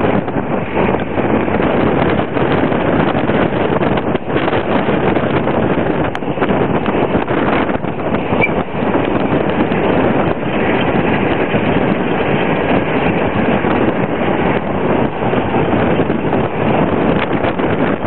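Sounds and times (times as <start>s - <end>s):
vehicle road and engine noise: 0.0s - 18.0s
wind buffeting microphone: 0.0s - 18.0s.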